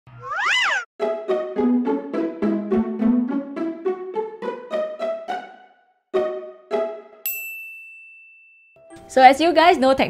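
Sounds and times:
high bright ding: 0:07.3 - 0:08.9.

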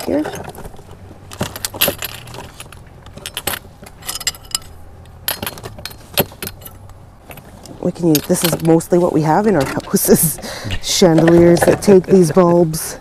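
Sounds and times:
glass bulbs clinking in plastic bag: 0:01.4 - 0:06.9.

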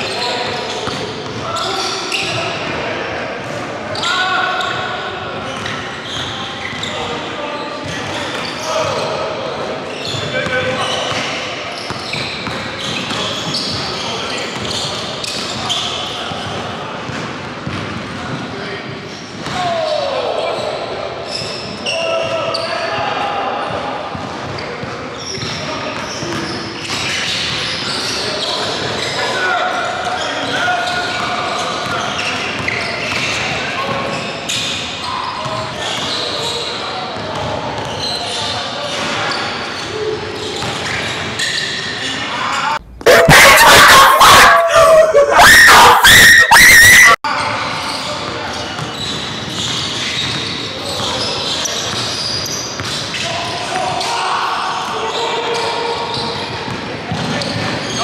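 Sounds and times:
indistinct voices: 0:42.8 - 0:47.2.

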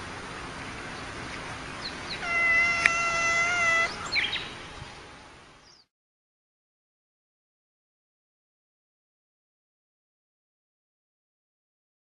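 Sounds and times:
cat squeaking: 0:02.2 - 0:04.0
cat yowling: 0:02.2 - 0:04.1.

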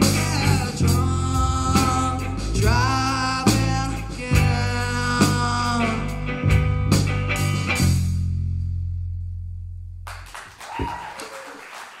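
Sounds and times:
audience clapping: 0:10.0 - 0:12.0
audience cheering: 0:10.1 - 0:12.0.

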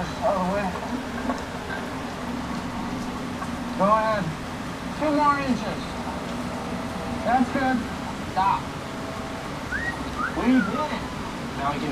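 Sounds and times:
steady low hum: 0:00.0 - 0:11.9.

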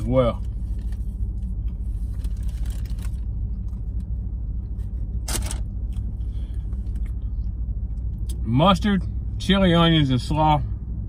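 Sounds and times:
car engine running: 0:00.0 - 0:11.0
short rustle or crunch: 0:00.4 - 0:07.2.

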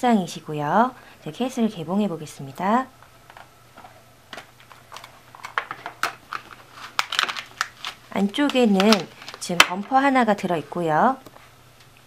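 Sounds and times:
plastic package clicks and crackles: 0:03.2 - 0:09.8.

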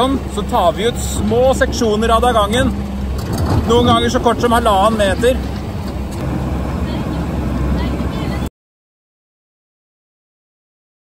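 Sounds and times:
low engine rumble: 0:00.0 - 0:08.5
faint voices: 0:06.6 - 0:08.5.

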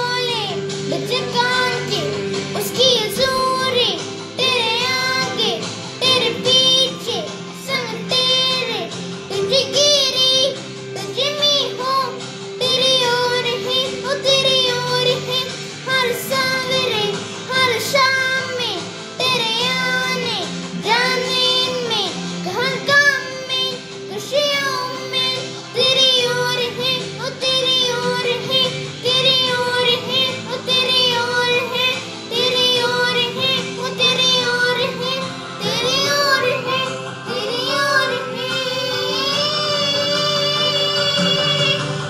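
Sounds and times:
high voices singing: 0:00.0 - 0:42.0.

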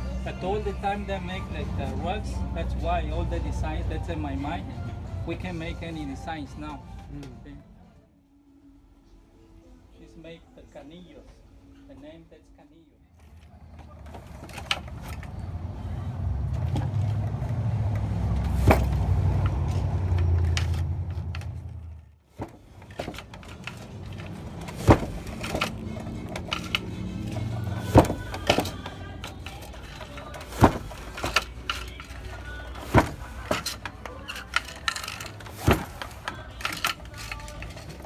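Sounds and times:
wooden loom knocking: 0:22.4 - 0:26.9, 0:27.9 - 0:28.8, 0:30.1 - 0:31.8, 0:32.8 - 0:33.9, 0:34.5 - 0:36.2
loom clicks: 0:22.4 - 0:38.0
heavy wooden thump: 0:24.7 - 0:25.6, 0:27.9 - 0:28.8, 0:30.6 - 0:31.3, 0:32.9 - 0:33.6, 0:35.6 - 0:36.1.

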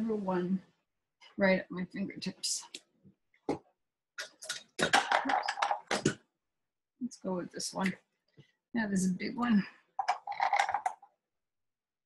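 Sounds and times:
paintbrush rattling against container: 0:10.0 - 0:11.1.

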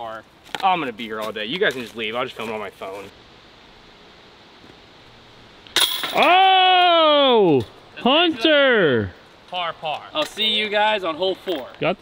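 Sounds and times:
disc hitting basket chains: 0:05.7 - 0:06.3.

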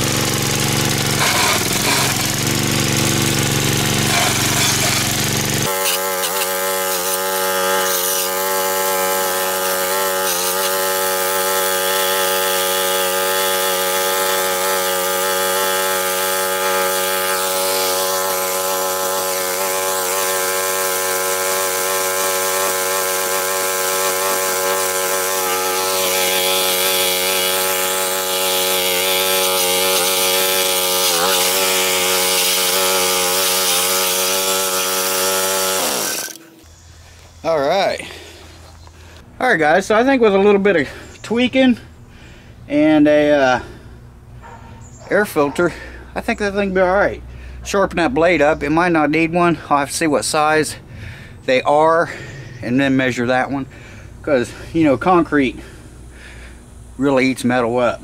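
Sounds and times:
edger engine running: 0:00.0 - 0:39.3.

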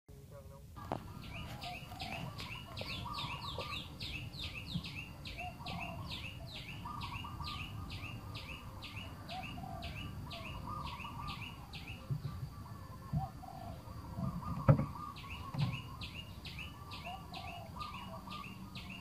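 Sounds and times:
lower bird chirps: 0:00.4 - 0:19.0.

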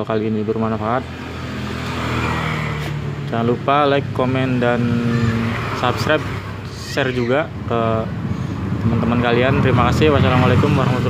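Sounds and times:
motor vehicle engine passing: 0:00.3 - 0:11.0.

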